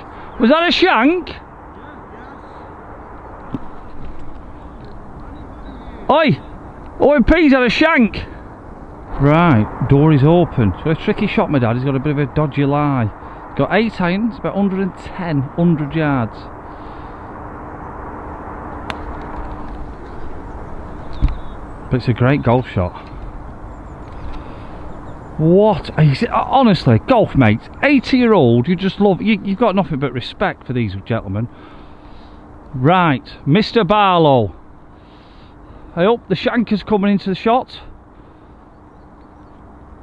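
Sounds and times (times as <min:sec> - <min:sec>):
outdoor background noise: 0:00.0 - 0:40.0
faint distant voices: 0:00.3 - 0:10.2
low rumble: 0:01.4 - 0:26.5.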